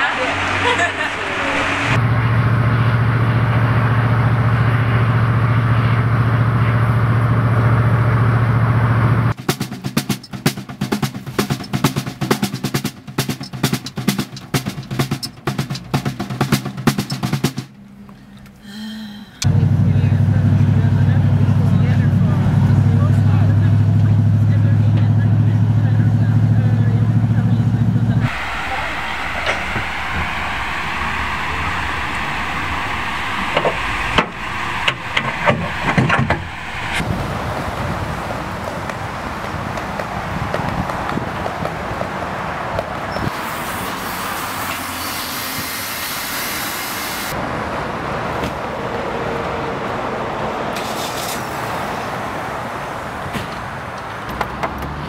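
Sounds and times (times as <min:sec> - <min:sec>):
van engine droning: 0:00.0 - 0:09.4, 0:17.7 - 0:38.4
snare drum played by hand: 0:09.4 - 0:17.7.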